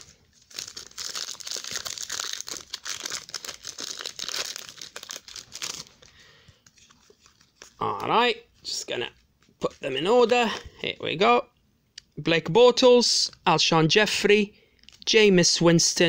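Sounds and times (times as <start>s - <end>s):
foil wrapper crinkling: 0.0s - 7.8s.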